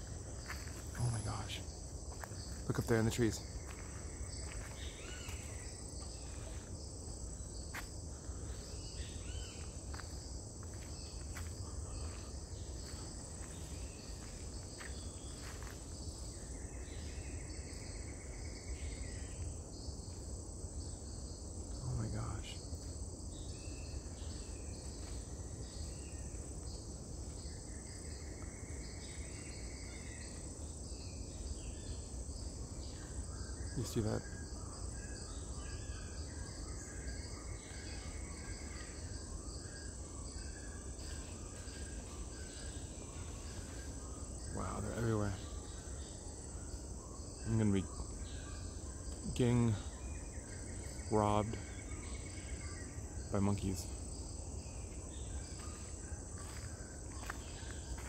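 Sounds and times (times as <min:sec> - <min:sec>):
insect buzzes: 0:00.0 - 0:58.0
insect chorus drone: 0:00.0 - 0:58.0.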